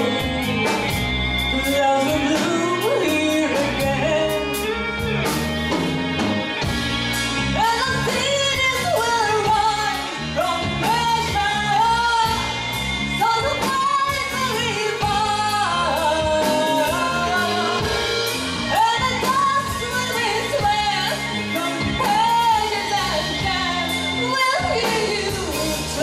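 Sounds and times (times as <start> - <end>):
woman singing: 0.0 - 4.8, 7.6 - 26.0
keyboards: 0.0 - 26.0
steady drumbeat: 0.0 - 26.0.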